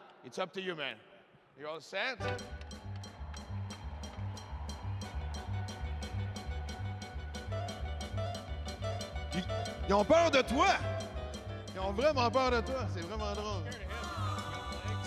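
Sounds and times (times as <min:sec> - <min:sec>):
upbeat music with bass line: 0:02.2 - 0:15.0
man's voice: 0:09.3 - 0:11.0, 0:11.7 - 0:15.0.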